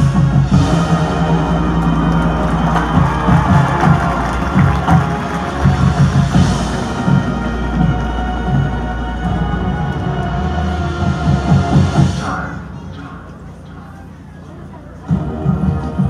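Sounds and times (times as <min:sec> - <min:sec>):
marching band playing chords: 0:00.0 - 0:13.5, 0:15.0 - 0:16.0
low bass: 0:00.0 - 0:16.0.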